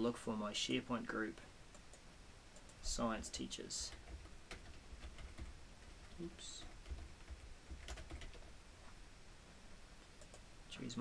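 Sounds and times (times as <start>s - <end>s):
computer keyboard typing: 3.8s - 8.5s, 10.2s - 10.4s.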